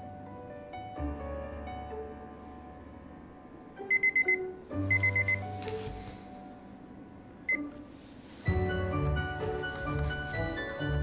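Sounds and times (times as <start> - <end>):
background piano music: 0.0 - 11.0
sharp high timer beeps: 3.9 - 4.4.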